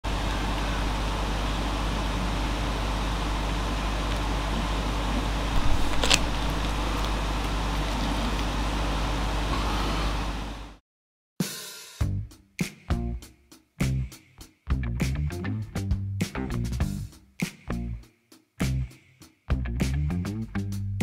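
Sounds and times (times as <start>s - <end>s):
mechanical hum and hiss: 0.1s - 10.8s.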